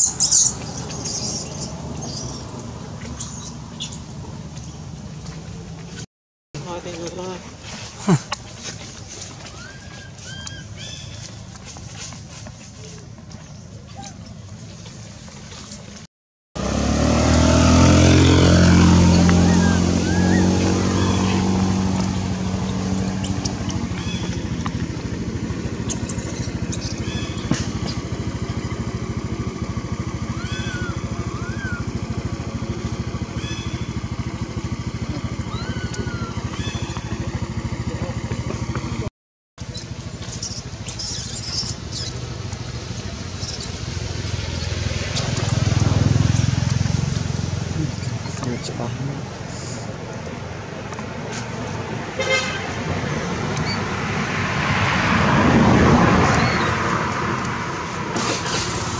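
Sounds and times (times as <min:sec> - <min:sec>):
vehicle engine running: 0:00.0 - 0:06.0, 0:16.6 - 0:58.9
short high chirps: 0:39.6 - 0:43.8.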